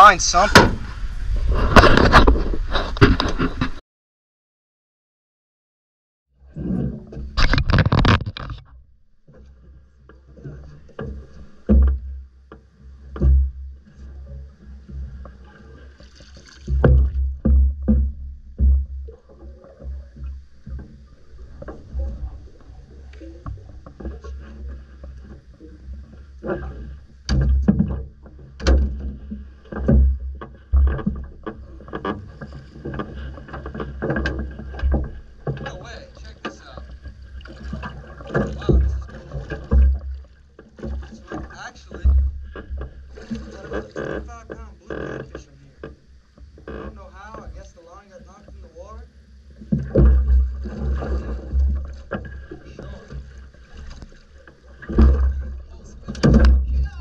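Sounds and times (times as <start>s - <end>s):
line knocking against hull: 0.0s - 0.9s, 10.0s - 49.0s, 49.6s - 57.0s
wind buffeting microphone: 0.0s - 3.8s
alligator thrashing and splashing: 14.1s - 45.3s, 49.7s - 57.0s.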